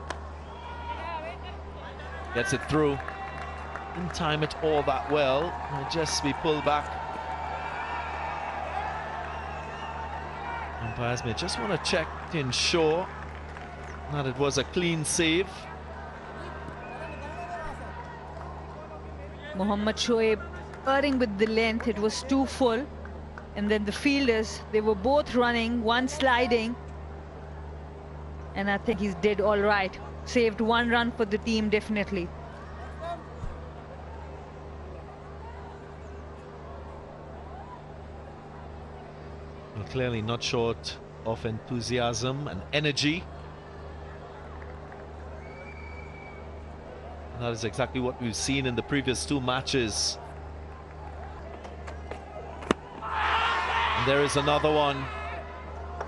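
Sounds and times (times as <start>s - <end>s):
steady low hum: 0.0s - 56.0s
faint high whistle-like tone: 45.4s - 46.6s.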